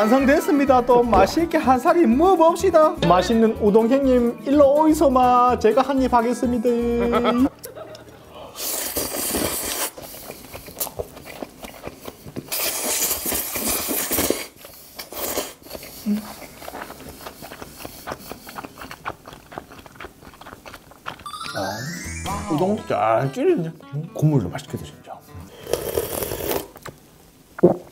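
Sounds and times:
man slurping noodles: 8.5 - 10.9, 12.5 - 16.6, 25.5 - 26.8
wet chewing: 8.8 - 21.3.

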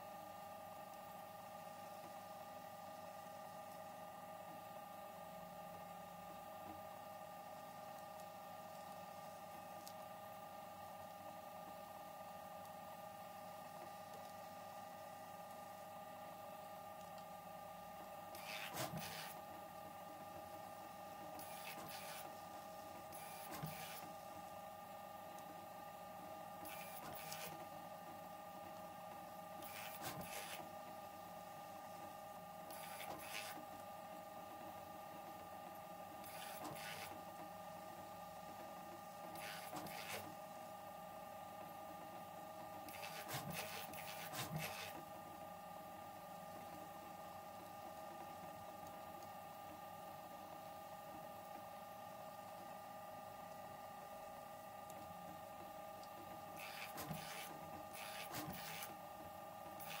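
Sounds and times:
printer motor whine: 0.0 - 60.0
extruder rasps: 56.6 - 59.0.

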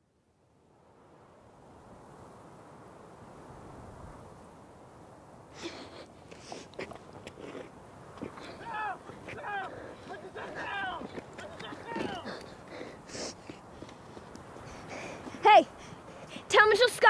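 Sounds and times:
wordless human calls: 8.2 - 13.5.

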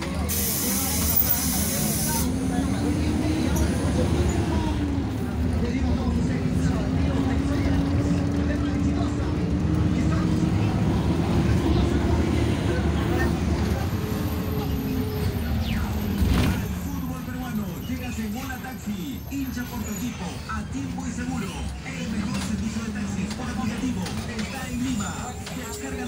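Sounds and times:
bus engine and road rumble: 0.0 - 26.0
engine and drivetrain hum: 0.0 - 26.0.

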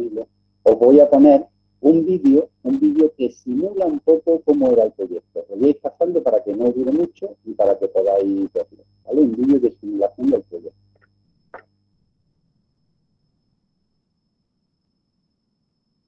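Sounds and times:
man speaking over garbled call: 0.0 - 10.7.

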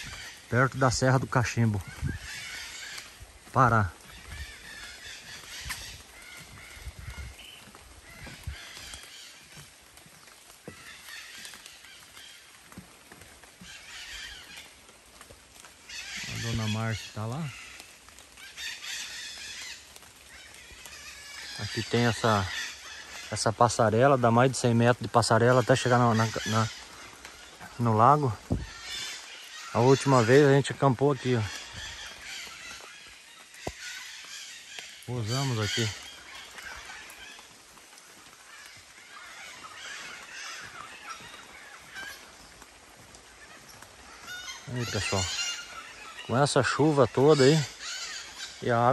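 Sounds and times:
birds calling faintly: 0.0 - 48.9.

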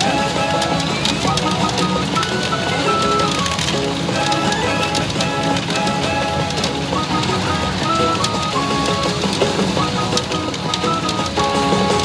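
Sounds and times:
jingly machine music: 0.0 - 12.0.

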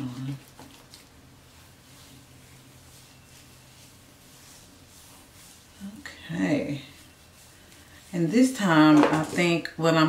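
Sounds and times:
hands rustling through hair: 0.0 - 9.6.

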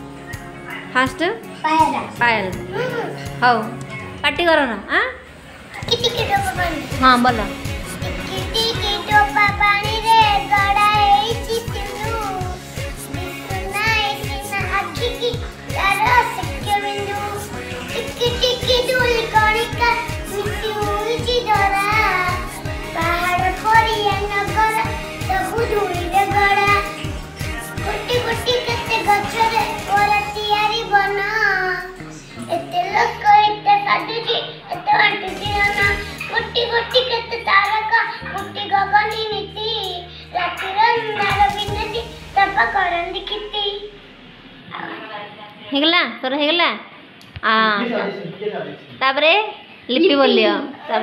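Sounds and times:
background music with steady beat: 0.0 - 45.9
girl singing: 5.9 - 44.0.

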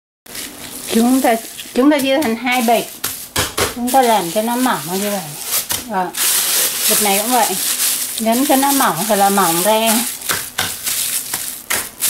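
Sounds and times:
plastic bags crinkling: 0.3 - 12.0
steady hiss: 0.3 - 12.0.

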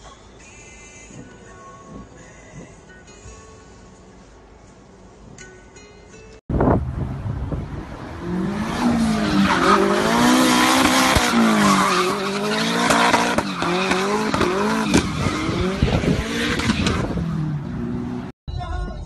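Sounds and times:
car engine revving: 7.0 - 18.3.

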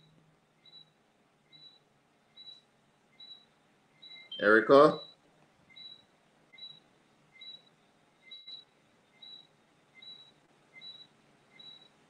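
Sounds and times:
faint high-pitched chirps: 0.0 - 12.0.

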